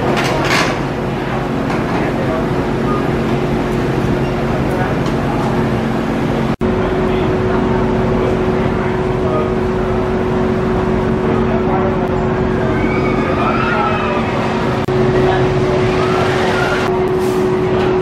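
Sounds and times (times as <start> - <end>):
indistinct voices: 0.0 - 18.0
machine hum: 0.8 - 18.0.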